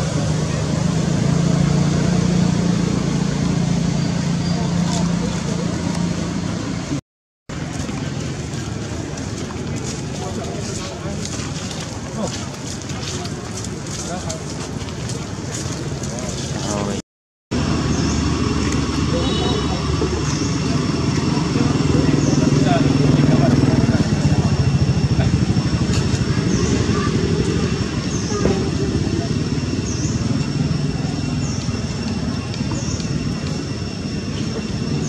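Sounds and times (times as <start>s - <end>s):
vehicle engine rumble: 0.0s - 35.0s.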